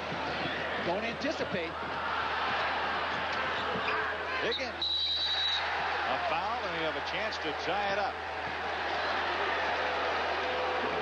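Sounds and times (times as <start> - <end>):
arena crowd roar: 0.0 - 11.0.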